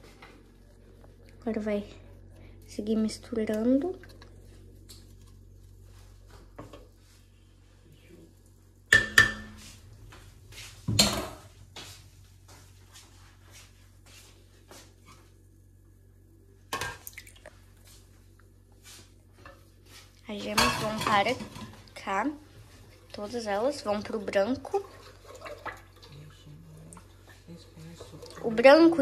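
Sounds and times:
faint low hum: 0:00.0 - 0:29.0.

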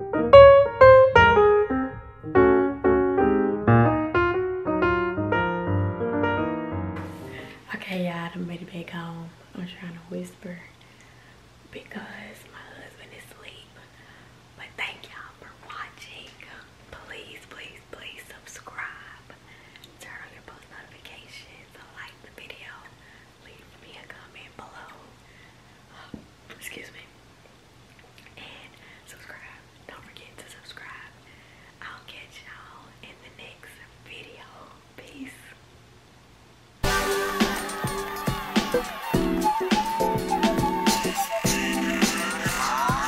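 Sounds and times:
woman whispering: 0:11.7 - 0:14.0, 0:14.6 - 0:25.2, 0:25.9 - 0:27.2, 0:28.3 - 0:31.2, 0:31.8 - 0:35.6.

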